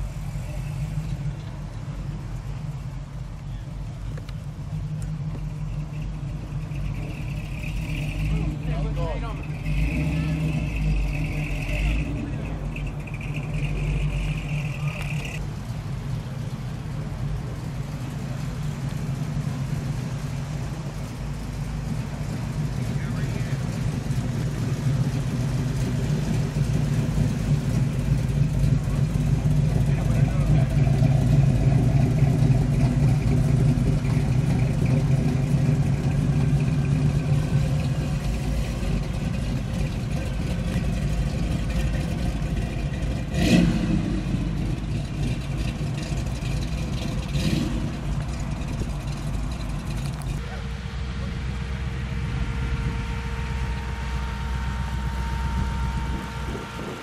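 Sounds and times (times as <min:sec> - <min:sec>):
car engines running at low speed: 0:00.0 - 0:57.0.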